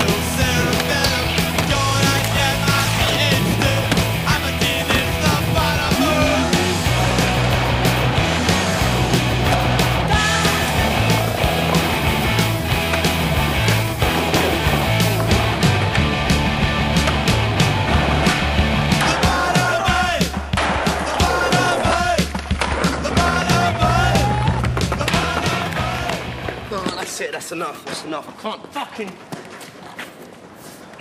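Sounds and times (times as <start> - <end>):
music with steady bass line: 0.0 - 19.2
skateboard wheels rolling on concrete: 0.0 - 19.8, 21.0 - 31.0.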